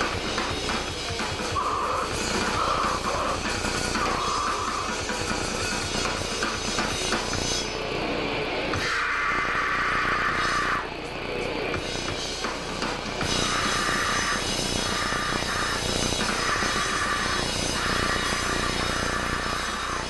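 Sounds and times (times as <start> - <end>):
grindcore band playing live: 0.0 - 7.8, 8.6 - 20.0.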